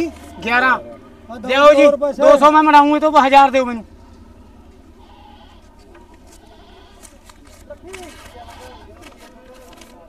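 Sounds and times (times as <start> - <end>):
goats bleating: 0.0 - 0.9, 4.4 - 9.8
background chatter: 0.0 - 10.0.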